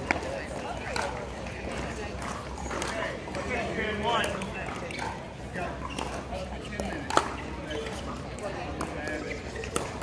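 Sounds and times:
murmur of background voices: 0.0s - 10.0s.

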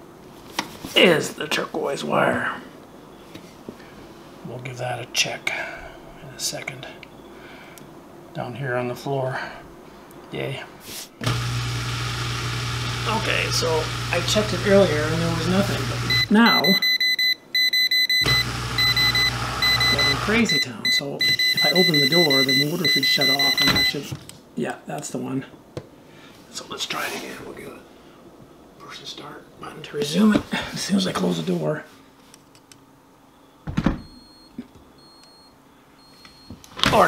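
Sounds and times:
voltage tester beeping rapidly: 16.1s - 24.0s
thump: 33.7s - 34.0s.

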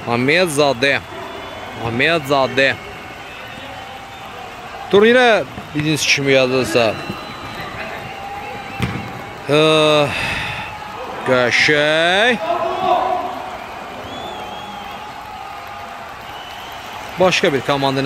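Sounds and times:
football being kicked: 7.0s - 9.3s
man shouting: 11.0s - 13.5s.

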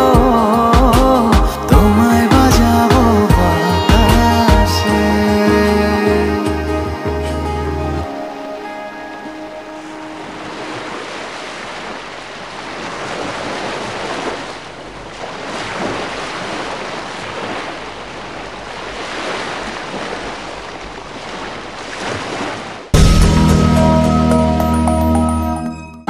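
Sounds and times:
music: 0.0s - 10.8s, 23.0s - 26.0s.

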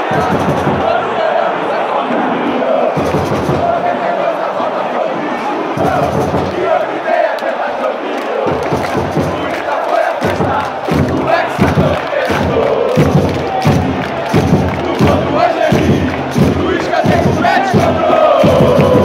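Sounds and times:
crowd singing a chant: 0.0s - 19.0s.

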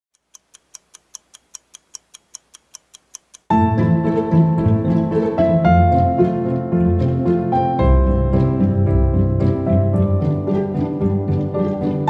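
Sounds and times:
fast clock-like ticking: 0.1s - 3.6s
music: 3.5s - 12.0s.

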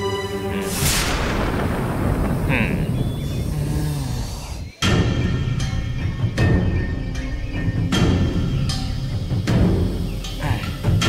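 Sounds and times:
dramatic background score: 0.0s - 11.0s
sharp musical hits: 0.7s - 3.5s.

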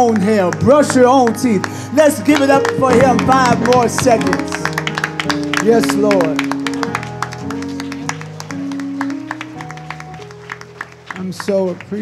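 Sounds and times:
congregation clapping: 0.0s - 12.0s
electric keyboard chords: 0.0s - 12.0s.

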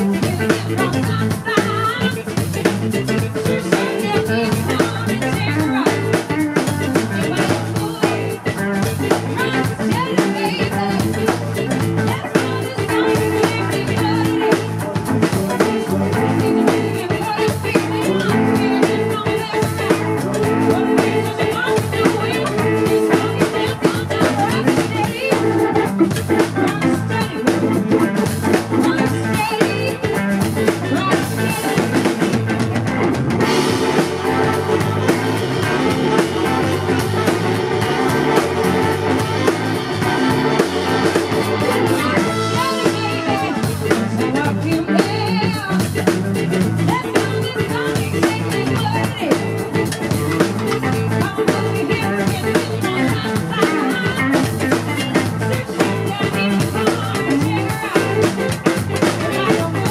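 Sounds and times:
woman singing: 0.0s - 32.6s, 33.4s - 59.9s
live rock band playing: 0.0s - 59.9s.

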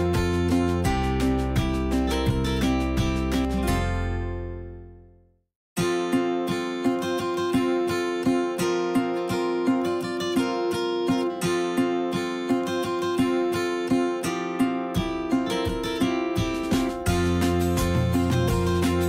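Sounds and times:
acoustic guitar strumming: 0.0s - 5.0s, 5.8s - 19.0s.

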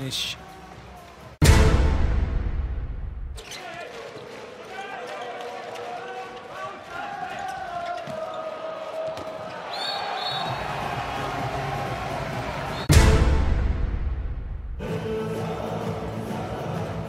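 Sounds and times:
crowd noise: 3.4s - 12.9s.

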